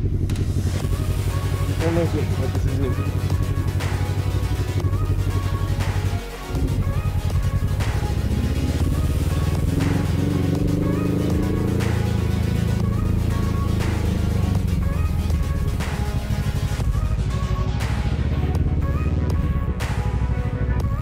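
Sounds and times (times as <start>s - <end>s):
background music with beat: 0.0s - 21.0s
motorcycle engine revving: 0.0s - 21.0s.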